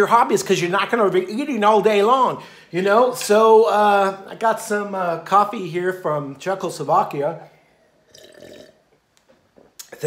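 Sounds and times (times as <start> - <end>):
person slurping coffee: 8.0 - 8.8.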